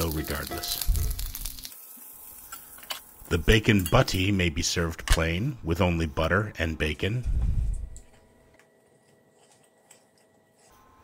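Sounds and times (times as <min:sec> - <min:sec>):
bacon sizzling in a skillet: 0:00.0 - 0:03.7.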